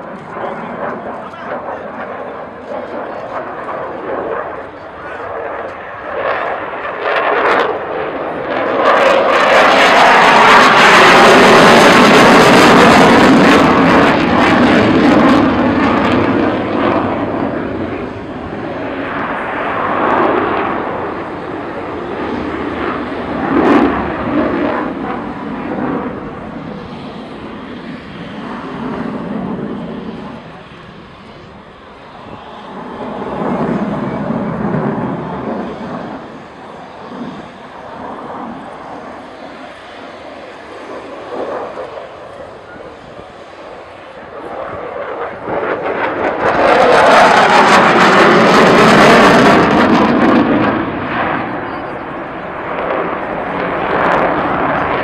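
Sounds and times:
fighter jet engines roaring: 0.0 - 55.0.

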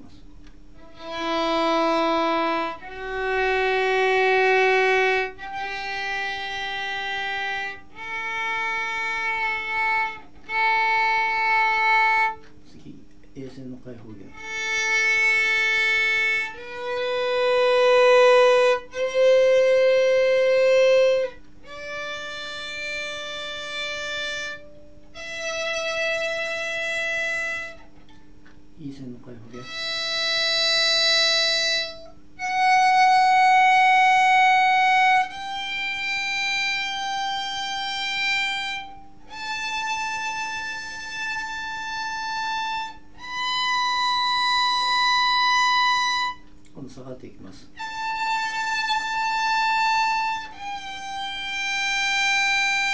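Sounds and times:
violin bowed notes: 0.8 - 12.9, 13.9 - 28.2, 28.8 - 52.9.

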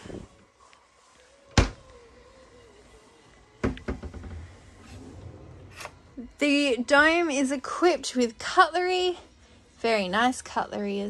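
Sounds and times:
kitchen drawer pulled open: 4.7 - 6.2.

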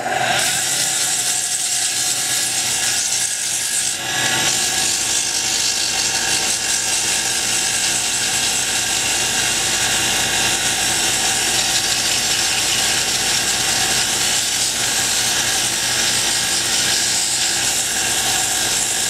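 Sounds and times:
sandpaper rubbing spinning wood: 0.0 - 19.0
wood lathe running: 0.0 - 19.0.

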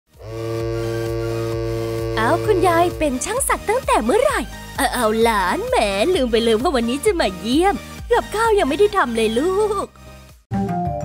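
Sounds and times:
tattoo machine buzzing: 0.2 - 3.0.

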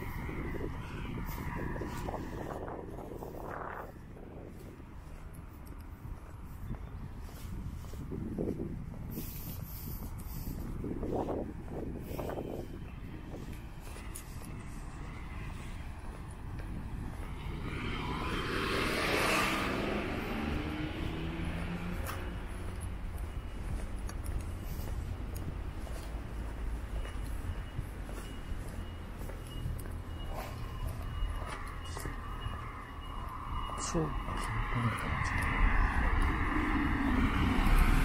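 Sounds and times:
car passing: 0.0 - 38.0
low traffic rumble: 0.0 - 38.0.

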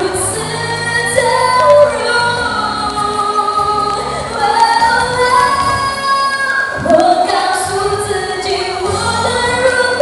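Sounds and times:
backing music: 0.0 - 10.0
woman singing pop ballad: 0.0 - 10.0.

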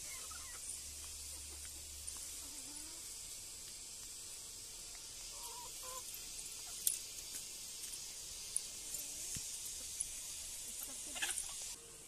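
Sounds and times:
steady high hiss: 0.0 - 12.0
chicken clucks: 10.6 - 11.8.

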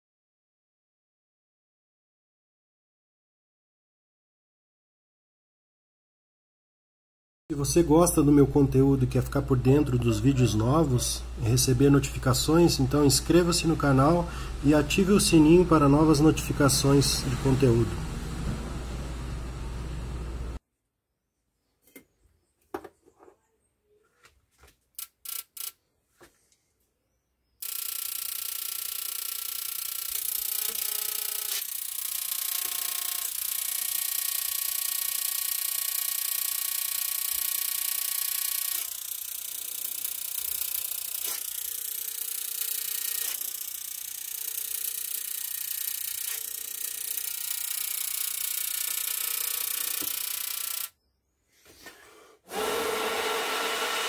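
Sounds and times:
electrical buzz with high whine: 7.6 - 20.6
sharp clicks: 25.0 - 25.8.

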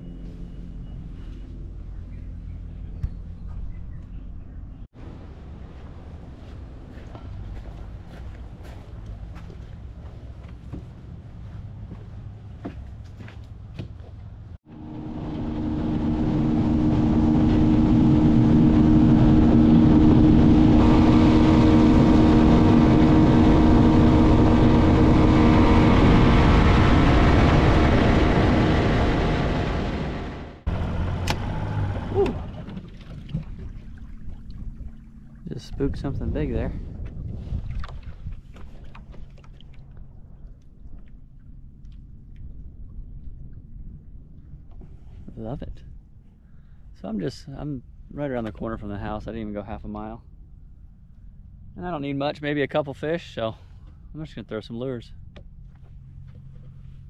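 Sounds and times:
low rumble: 0.0 - 57.0
outboard motor drone: 14.3 - 57.0.

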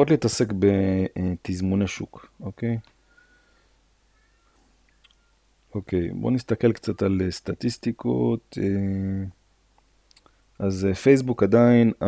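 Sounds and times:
faint thin high tones: 4.0 - 5.5.

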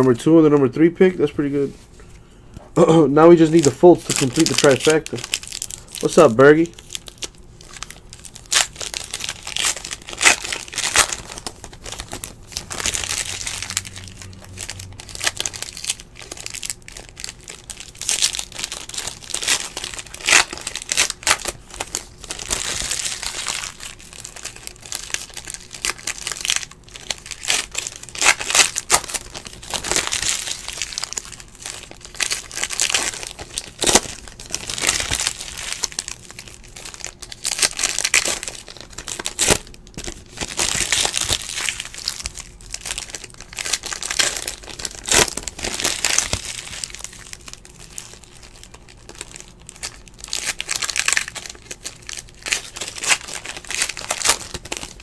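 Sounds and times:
foil wrappers crinkling and tearing: 2.8 - 55.0.

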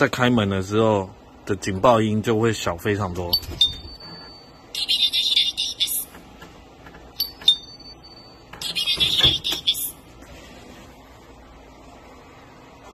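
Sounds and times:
high electronic alarm warbling: 3.4 - 6.1.

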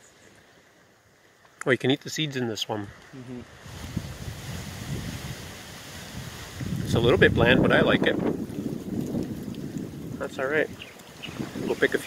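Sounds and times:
wind buffeting microphone: 3.6 - 12.0.

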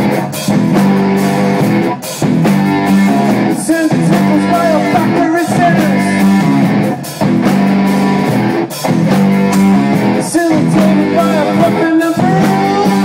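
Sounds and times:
drum kit: 0.0 - 13.0
electric guitar chords: 0.0 - 13.0.

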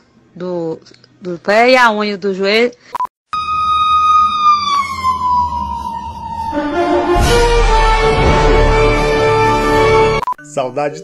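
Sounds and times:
siren sliding down in pitch: 3.3 - 9.1
music: 6.6 - 11.0.

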